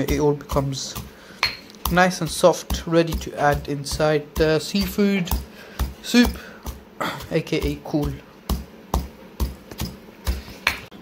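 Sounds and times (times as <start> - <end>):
stone pestle pounding in mortar: 0.0 - 11.0.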